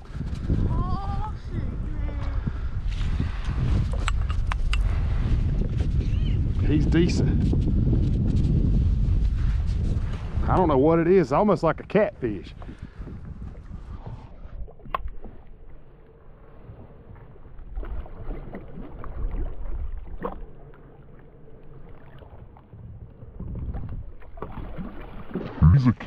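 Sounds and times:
wind rumbling on microphone: 0:00.0 - 0:20.4, 0:21.9 - 0:25.0
fish splashing in water: 0:17.7 - 0:20.7, 0:24.2 - 0:25.6.

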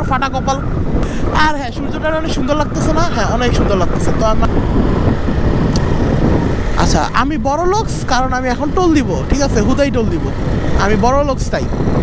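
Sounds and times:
motorcycle engine running: 0:00.0 - 0:12.0
road noise: 0:00.0 - 0:12.0
wind rushing: 0:00.0 - 0:12.0.

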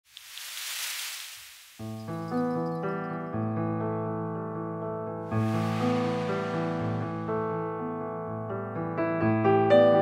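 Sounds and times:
hiss: 0:00.1 - 0:01.8, 0:05.3 - 0:07.4
keyboard chords music: 0:01.8 - 0:10.0.

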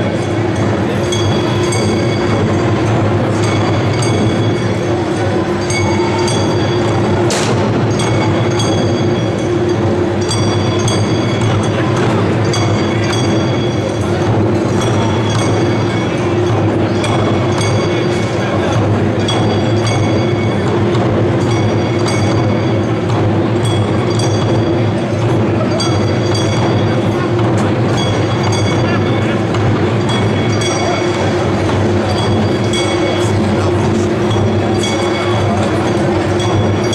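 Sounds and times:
hand cymbals ringing: 0:00.0 - 0:36.9
large drums beaten loudly: 0:00.0 - 0:36.9.

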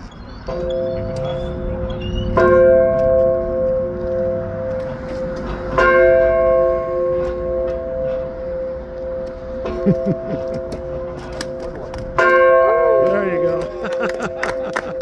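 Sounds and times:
large alarm bell ringing: 0:00.4 - 0:15.0.

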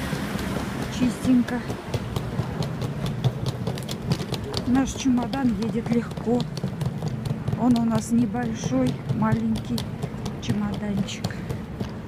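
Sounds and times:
suitcase wheels rolling on stone: 0:00.0 - 0:12.0.

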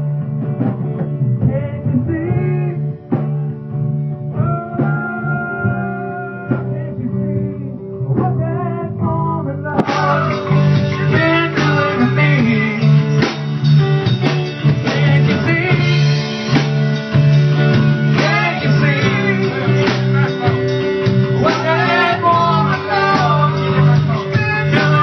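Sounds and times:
drum kit: 0:00.0 - 0:25.0
electric guitar playing: 0:00.0 - 0:25.0.

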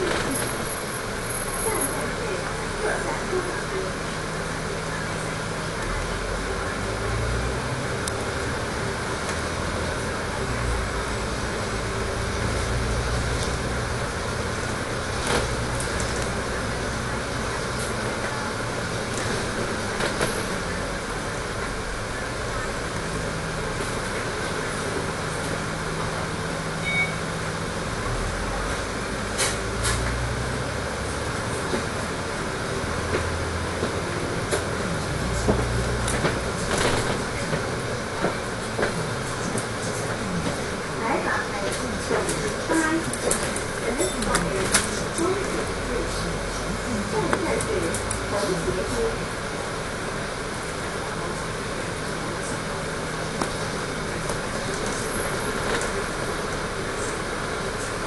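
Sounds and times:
bus body rattling and knocking: 0:00.0 - 0:06.6, 0:07.9 - 0:58.0
bus diesel engine running: 0:00.0 - 0:58.0.

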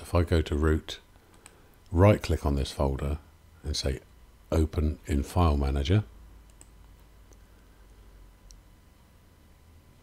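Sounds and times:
low steady hum: 0:00.0 - 0:10.0
computer mouse clicks: 0:01.3 - 0:01.6, 0:06.5 - 0:07.4.

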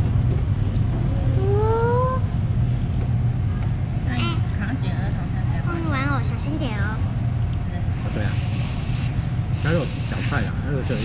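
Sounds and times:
low room rumble: 0:00.0 - 0:11.0
child humming: 0:01.1 - 0:02.2.

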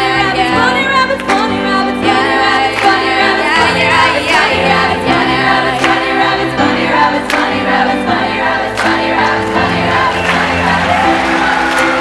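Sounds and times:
group singing held chords: 0:01.9 - 0:12.0.

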